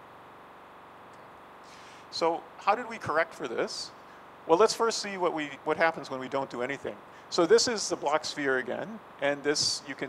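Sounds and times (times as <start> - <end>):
faint hum: 0.0 - 10.0
room hiss: 0.0 - 10.0.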